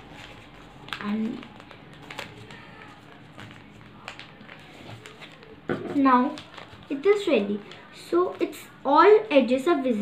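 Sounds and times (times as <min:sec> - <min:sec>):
paper rustling: 0:00.0 - 0:08.7.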